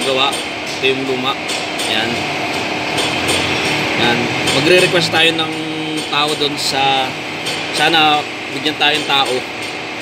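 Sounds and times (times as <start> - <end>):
machine-shop hiss: 0.0 - 9.6.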